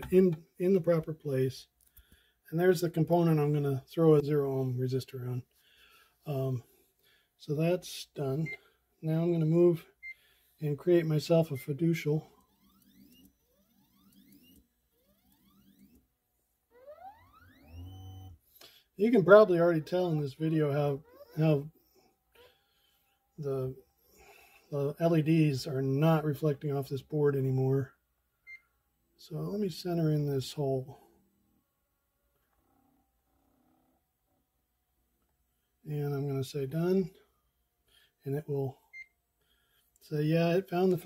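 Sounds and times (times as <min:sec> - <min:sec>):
stepper motors whining: 0:12.2 - 0:16.1, 0:16.7 - 0:18.6, 0:21.0 - 0:22.6.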